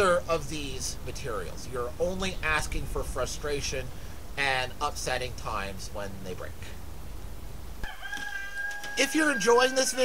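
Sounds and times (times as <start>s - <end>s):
rooster crowing: 7.8s - 9.5s.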